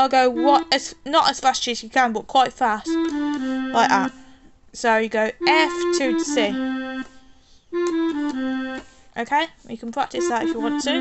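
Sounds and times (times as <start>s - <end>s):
electronic keyboard accordion notes: 0.0s - 1.4s, 2.8s - 4.4s, 5.3s - 9.2s, 10.1s - 11.0s.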